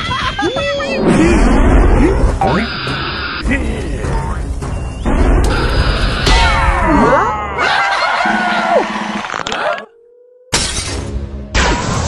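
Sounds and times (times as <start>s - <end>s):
cartoon background music: 0.0s - 8.8s.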